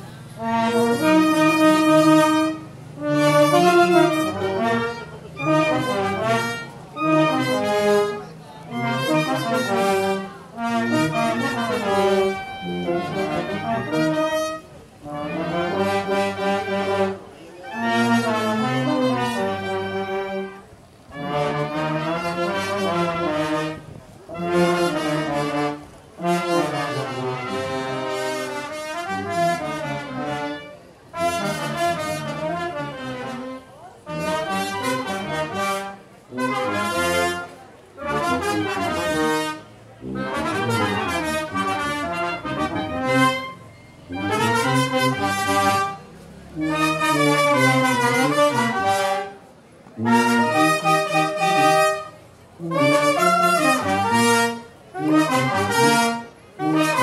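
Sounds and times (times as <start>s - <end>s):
brass band music: 0.0s - 57.0s.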